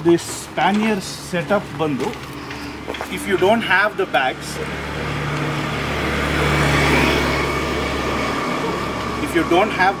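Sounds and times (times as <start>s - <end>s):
vehicle passing by: 1.4s - 10.0s.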